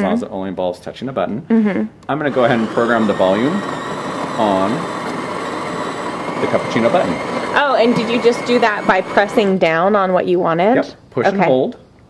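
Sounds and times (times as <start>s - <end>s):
espresso machine running: 2.2s - 9.9s.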